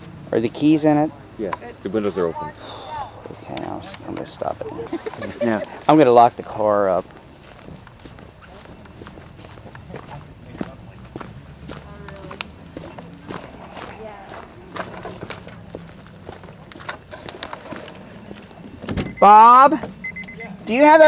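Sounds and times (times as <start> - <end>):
faint voices: 0.0 - 21.0
footsteps: 3.2 - 20.4.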